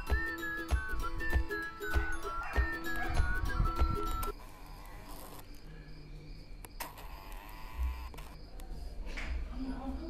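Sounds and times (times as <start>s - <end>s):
crickets chirping: 0.1s - 10.0s.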